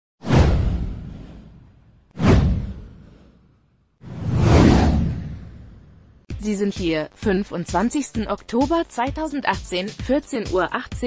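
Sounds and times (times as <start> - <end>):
deep boom: 0.2 - 3.3
whoosh: 0.2 - 6.3.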